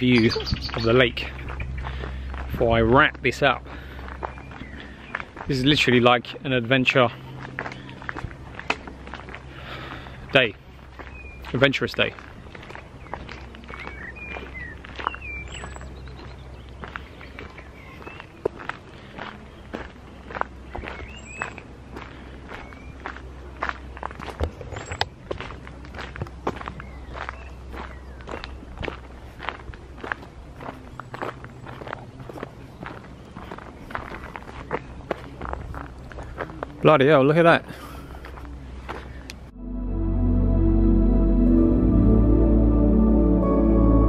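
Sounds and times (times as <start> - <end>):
birds chirping: 0.0 - 23.2, 26.7 - 28.8
footsteps on dirt path: 0.0 - 39.5.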